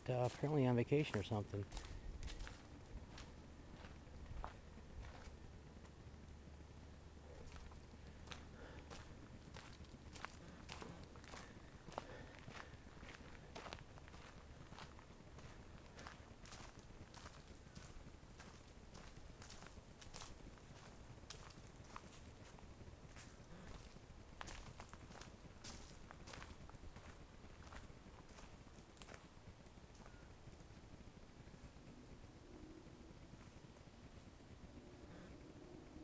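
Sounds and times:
footsteps walking: 0.2 - 6.0, 7.3 - 29.3.

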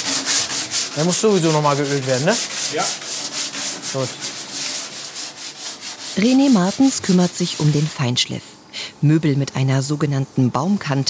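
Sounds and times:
sandpaper rubbing on wood: 0.0 - 8.1.

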